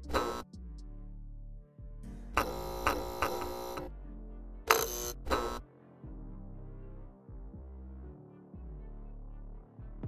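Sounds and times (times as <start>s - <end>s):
low background music: 0.0s - 10.0s
electric neon sign buzzing: 0.1s - 0.4s, 2.4s - 3.9s, 4.7s - 5.6s.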